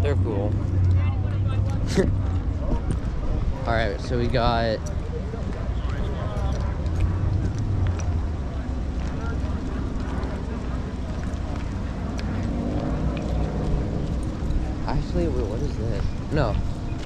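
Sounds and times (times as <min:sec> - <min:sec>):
faint chatter of people: 0:00.0 - 0:17.0
wind rumbling on microphone: 0:00.0 - 0:17.0.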